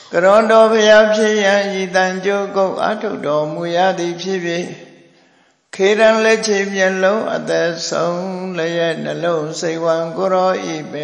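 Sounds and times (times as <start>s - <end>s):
man chanting: 0.0s - 4.8s, 5.8s - 11.0s.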